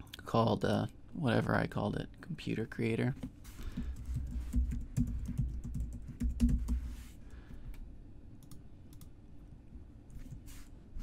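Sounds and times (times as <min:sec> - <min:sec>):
computer keyboard typing: 0:03.8 - 0:06.8.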